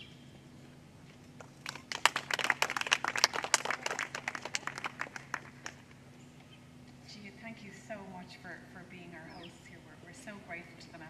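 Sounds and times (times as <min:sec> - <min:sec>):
audience applauding: 0:01.6 - 0:05.8.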